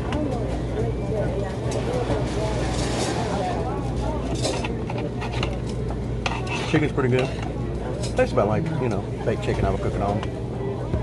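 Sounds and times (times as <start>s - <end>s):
diners chattering: 0.0s - 11.0s
cutlery and dishes clinking: 1.6s - 8.3s.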